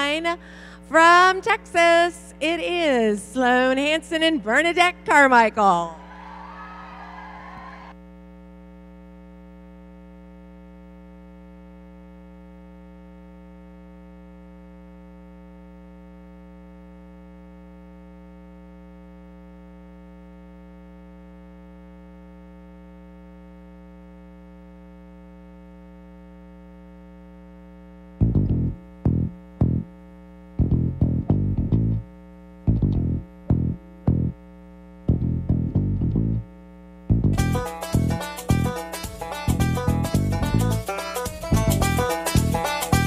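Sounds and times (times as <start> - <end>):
electrical mains hum: 0.0 - 43.0.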